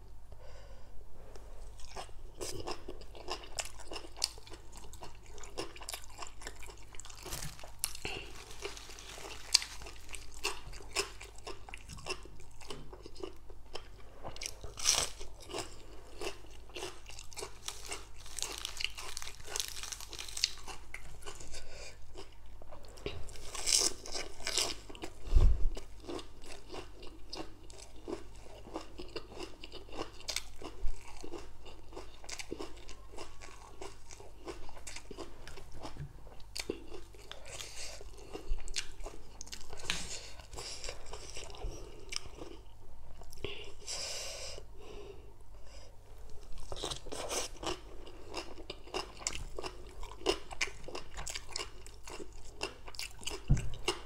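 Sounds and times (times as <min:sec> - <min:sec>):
person chewing crunchy greens: 0:01.4 - 0:44.0, 0:46.2 - 0:54.0
low thump: 0:53.5 - 0:53.8.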